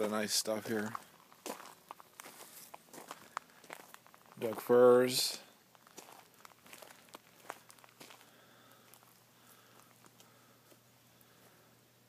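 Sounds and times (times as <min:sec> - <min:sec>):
faint footsteps outdoors: 0:00.0 - 0:12.0.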